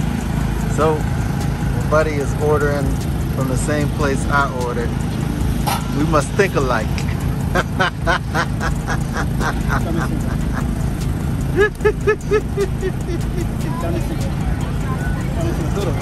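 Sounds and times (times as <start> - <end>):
man laughing heartily: 7.4 - 14.4
higher-pitched laughs: 7.5 - 14.3.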